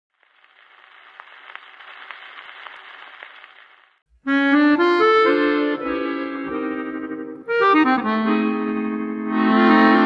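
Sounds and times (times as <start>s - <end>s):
record surface hiss and clicks: 0.1s - 4.0s.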